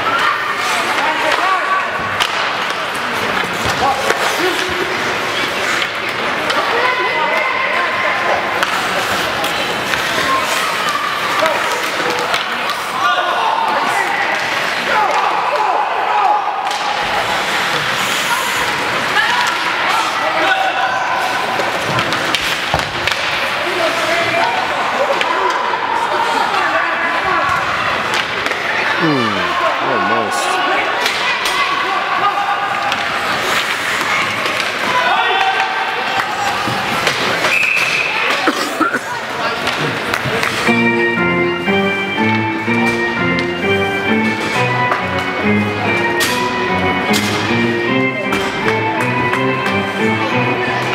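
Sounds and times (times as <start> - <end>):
puck and sticks knocking boards: 1.3 - 4.8, 21.6 - 23.6, 44.2 - 50.1
voices calling out: 28.8 - 31.0.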